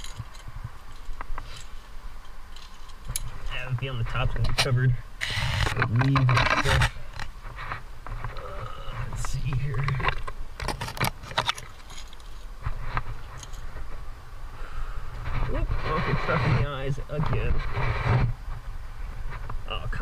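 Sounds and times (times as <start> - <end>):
metal climbing gear clinking: 0.0 - 3.8, 9.9 - 13.8
person grunting or muttering: 8.4 - 9.0.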